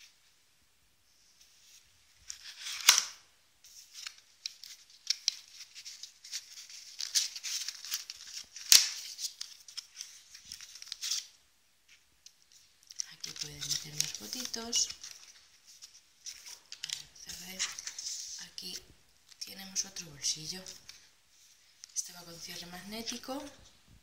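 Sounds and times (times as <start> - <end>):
cardstock pages rustling and scraping: 11.9 - 18.2.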